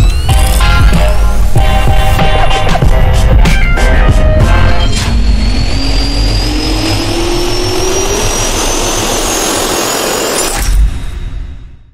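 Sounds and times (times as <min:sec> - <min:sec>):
jet turbine spooling up: 0:04.3 - 0:11.5.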